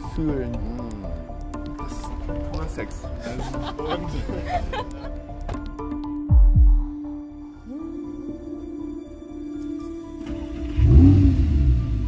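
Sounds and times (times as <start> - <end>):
car engine starting and idling: 10.0 - 12.0.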